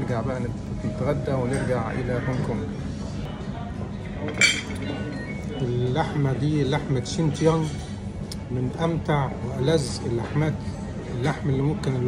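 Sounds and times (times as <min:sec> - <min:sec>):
crockery clinking on a table: 0:04.2 - 0:05.5.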